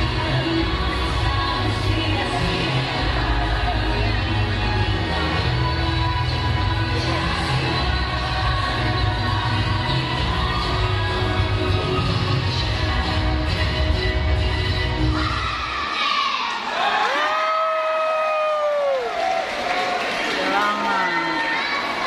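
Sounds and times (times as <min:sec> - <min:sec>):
crowd cheering and shouting: 0:15.0 - 0:22.0.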